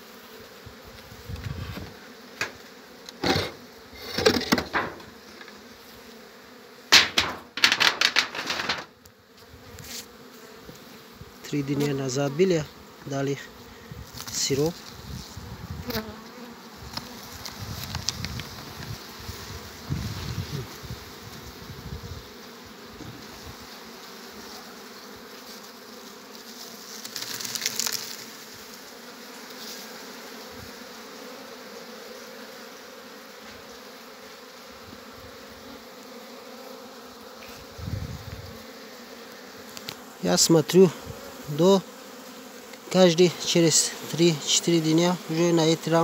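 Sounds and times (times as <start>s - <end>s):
honeybee colony humming: 0.0s - 46.0s.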